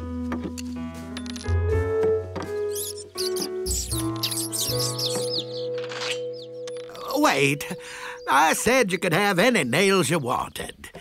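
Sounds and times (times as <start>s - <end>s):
cartoon background music: 0.0s - 10.3s
high squeaky chirps: 2.6s - 10.1s.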